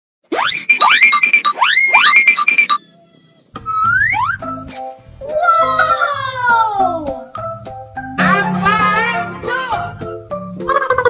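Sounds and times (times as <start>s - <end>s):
short bright beeps: 0.4s - 2.9s.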